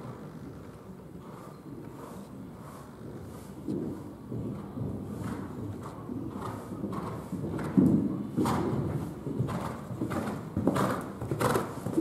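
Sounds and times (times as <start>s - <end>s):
horse hooves cantering on sand: 0.0s - 12.0s.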